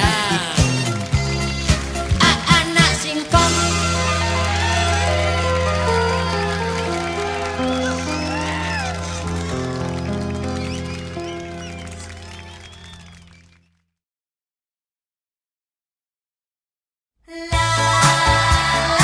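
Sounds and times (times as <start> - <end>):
pop song final chord: 0.0 - 9.4, 17.3 - 19.0.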